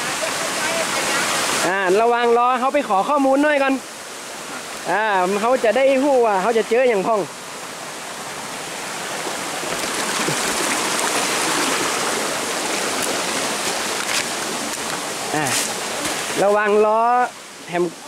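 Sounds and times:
stream running over stones: 0.0s - 18.0s.

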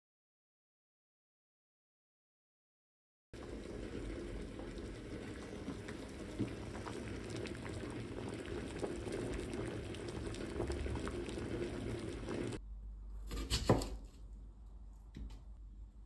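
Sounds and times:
water boiling with small pops: 3.4s - 12.6s.

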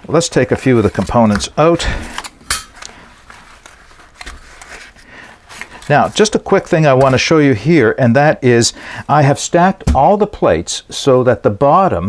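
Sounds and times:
fabric rustling: 3.0s - 6.3s.

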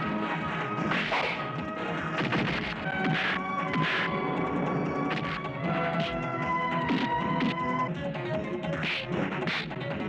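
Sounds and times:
fight hits and blows: 0.8s - 4.2s, 5.1s - 6.2s.

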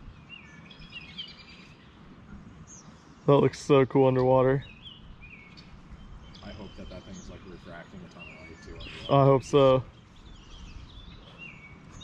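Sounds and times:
songbird chirps: 0.0s - 12.0s.

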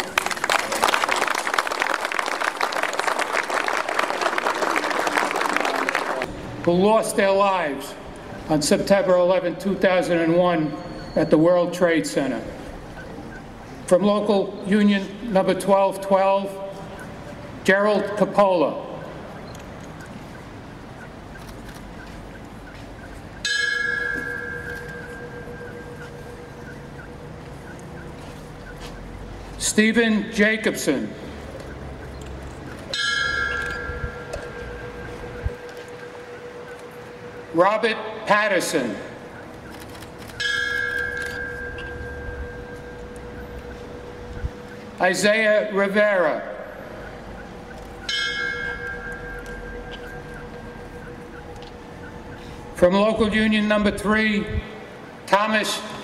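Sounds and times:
bell ringing with long tone: 23.4s - 28.4s, 32.9s - 39.3s, 40.2s - 47.1s, 48.0s - 53.8s.

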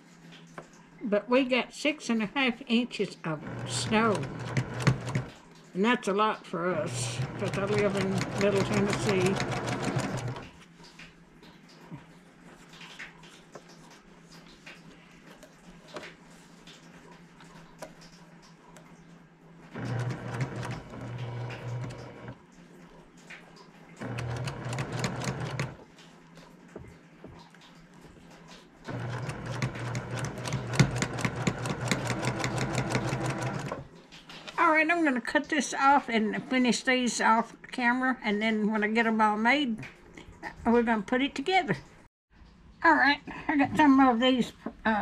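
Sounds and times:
sewing machine motor hum: 3.3s - 5.4s, 6.6s - 10.6s, 19.7s - 22.4s, 24.0s - 25.8s, 28.9s - 33.9s
sewing machine needle rattle: 3.4s - 5.4s, 6.8s - 10.5s, 19.8s - 22.4s, 24.0s - 25.8s, 28.9s - 33.8s.

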